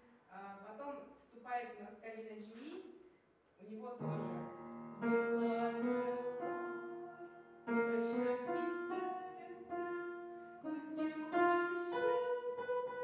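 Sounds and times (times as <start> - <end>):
upright piano playing chords: 4.0 - 13.0.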